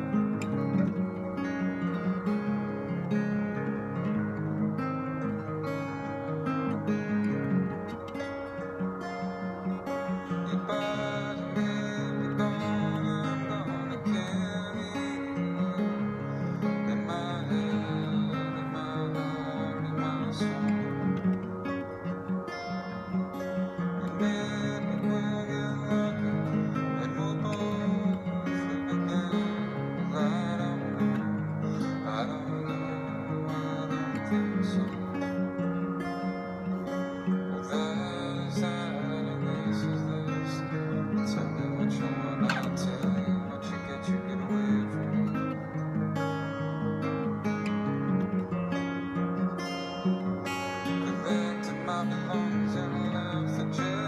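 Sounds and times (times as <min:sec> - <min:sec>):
acoustic guitar playing chords: 0:00.0 - 0:54.0.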